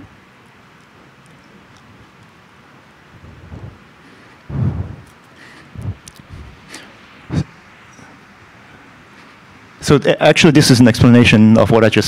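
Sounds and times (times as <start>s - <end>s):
steady faint hiss: 0.0s - 12.0s.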